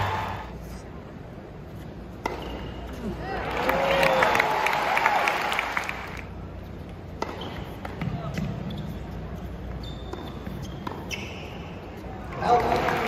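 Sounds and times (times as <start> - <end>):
tennis ball hits and bounces: 2.2 - 3.0, 7.1 - 8.8, 10.1 - 11.2.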